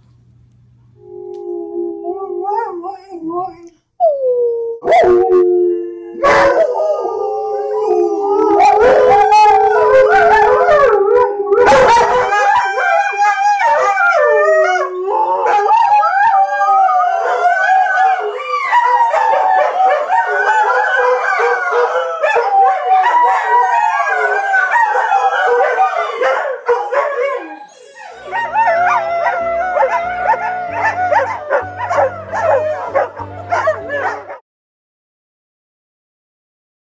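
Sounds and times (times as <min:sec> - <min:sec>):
dogs howling: 0:01.0 - 0:34.4.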